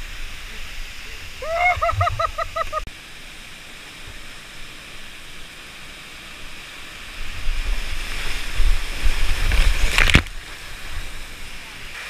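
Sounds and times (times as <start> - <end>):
low rumble of rapids: 0.0 - 12.0
water splashing: 0.0 - 12.0
whitewater creek and waterfall rushing: 0.0 - 12.0
person laughing hoots: 1.4 - 2.8.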